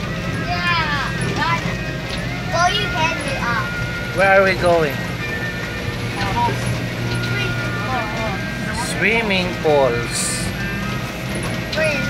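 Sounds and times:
van engine and road hum: 0.0 - 12.0.

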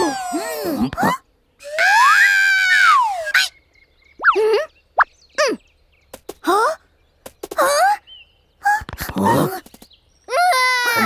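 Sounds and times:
cartoon squeal: 1.6 - 3.5.

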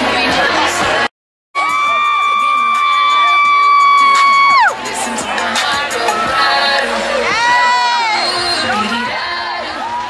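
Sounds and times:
music: 0.0 - 10.0
crowd cheering: 1.6 - 10.0.

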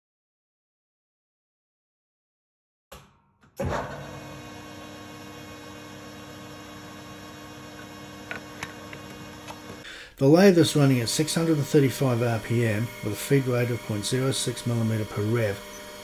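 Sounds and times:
metal lathe running with hum and whine: 4.0 - 9.8, 10.5 - 16.0.

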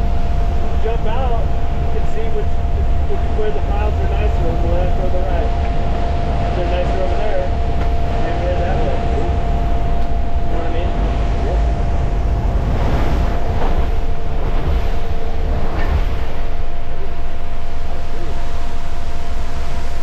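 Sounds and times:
aircraft engine and propeller rumble: 0.0 - 20.0
steady whining tones: 0.0 - 20.0.

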